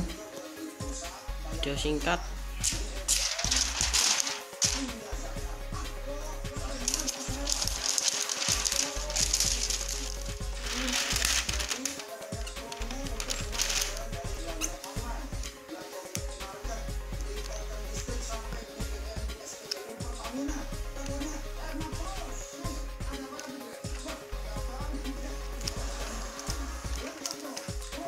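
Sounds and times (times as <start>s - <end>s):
faint music: 0.0s - 28.0s
faint voices: 2.6s - 28.0s.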